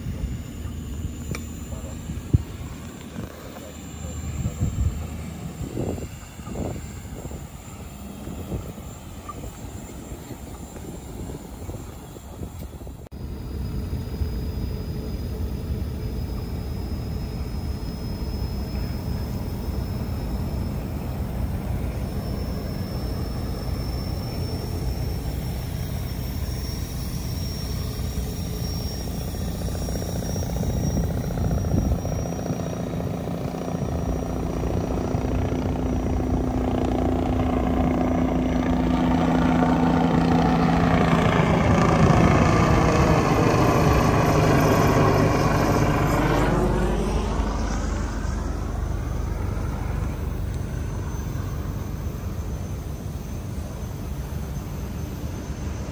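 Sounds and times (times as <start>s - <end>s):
low engine hum: 0.0s - 55.9s
engine passing by: 34.0s - 52.9s.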